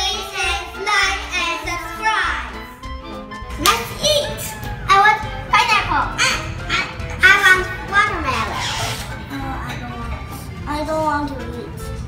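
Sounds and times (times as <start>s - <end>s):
children speaking: 0.0s - 2.7s, 3.6s - 11.8s
background music: 0.0s - 12.0s.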